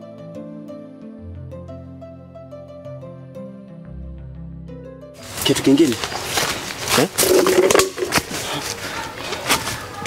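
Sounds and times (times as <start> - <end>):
leaves crackling underfoot: 5.2 - 10.0.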